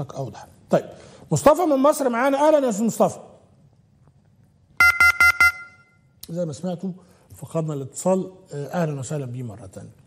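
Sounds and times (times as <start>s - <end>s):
telephone disconnect beeps: 4.8s - 6.1s.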